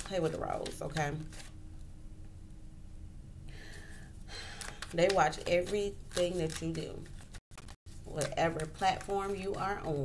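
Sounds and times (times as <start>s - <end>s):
person inhaling quickly: 3.5s - 4.8s
person speaking: 4.6s - 7.1s, 8.1s - 10.0s.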